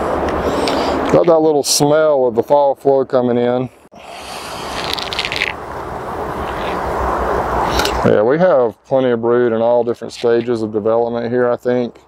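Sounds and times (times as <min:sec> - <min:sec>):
steady rushing hiss: 0:04.0 - 0:08.0.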